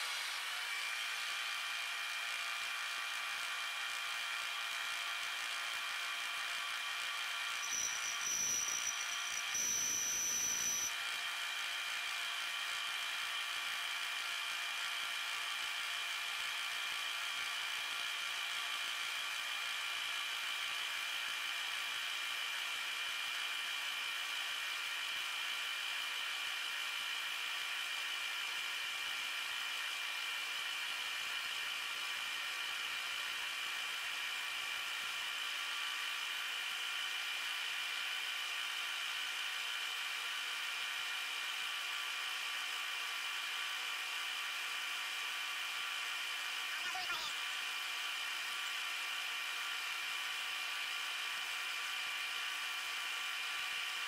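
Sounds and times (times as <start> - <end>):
milling machine whine: 0.0 - 2.2, 5.4 - 11.0
end mill squealing: 7.6 - 10.9.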